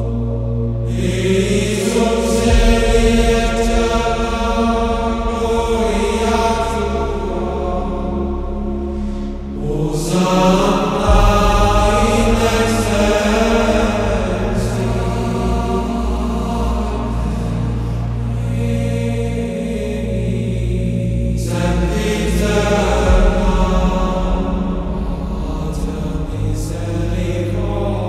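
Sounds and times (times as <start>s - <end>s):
low drone: 0.0s - 28.0s
voices chanting long notes: 0.0s - 28.0s.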